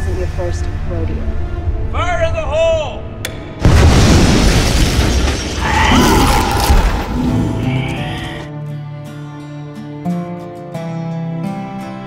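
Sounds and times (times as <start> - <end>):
explosion boom with heavy rumble: 3.6 - 7.2.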